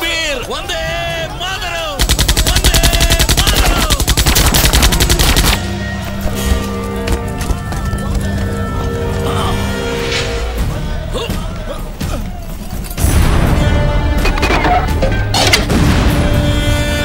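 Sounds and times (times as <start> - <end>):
men shouting: 0.0 - 4.3, 7.6 - 13.7
automatic gunfire: 2.0 - 5.6.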